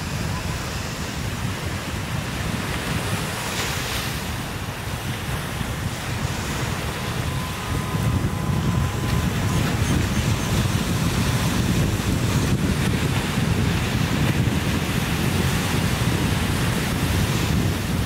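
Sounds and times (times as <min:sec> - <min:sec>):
surf washing on shore: 0:00.0 - 0:18.0
wind buffeting microphone: 0:00.0 - 0:18.0.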